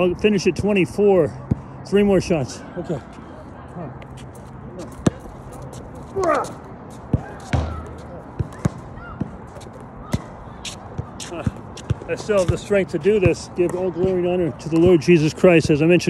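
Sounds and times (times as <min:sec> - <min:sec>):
basketball bouncing on hard court: 0:05.0 - 0:05.2, 0:07.1 - 0:09.4, 0:10.9 - 0:15.0.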